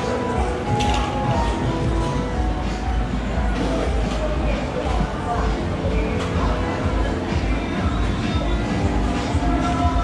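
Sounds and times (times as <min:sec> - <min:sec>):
background music: 0:00.0 - 0:10.0
scattered voices: 0:00.0 - 0:10.0.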